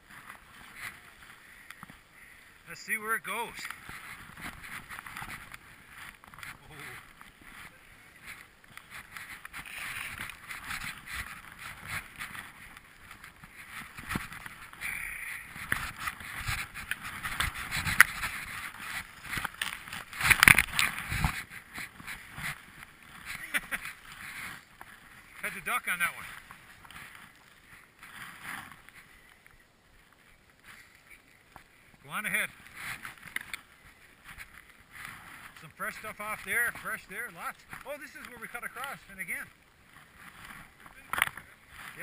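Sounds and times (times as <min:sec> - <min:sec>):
skis swishing through powder snow: 0:00.0 - 0:29.2, 0:29.8 - 0:42.0
clicks and knocks of skis and poles: 0:00.0 - 0:42.0.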